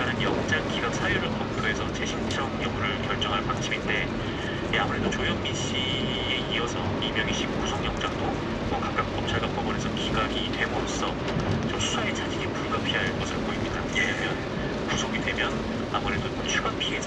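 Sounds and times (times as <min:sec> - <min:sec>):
rain on car: 0:00.0 - 0:17.0
road noise inside car: 0:00.0 - 0:17.0.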